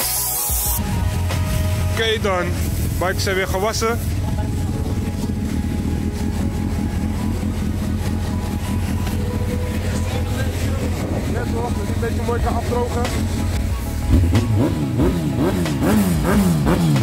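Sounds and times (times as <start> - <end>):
motorcycle engine idling: 0.7 - 17.0
faint voices: 1.7 - 16.0.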